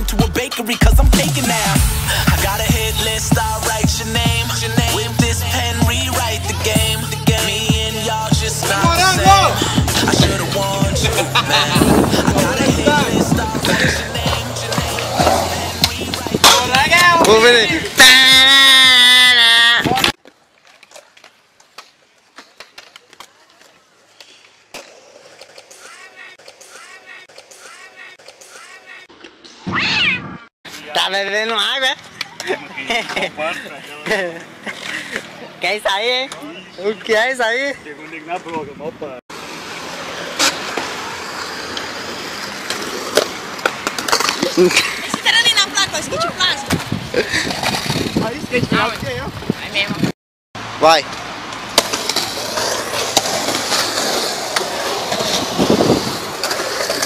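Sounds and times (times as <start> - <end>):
hip-hop music with bass beat: 0.0 - 18.4
skateboard wheels rolling on concrete: 0.3 - 57.0
skateboard clacks: 8.6 - 17.5, 40.2 - 45.8, 51.1 - 57.0.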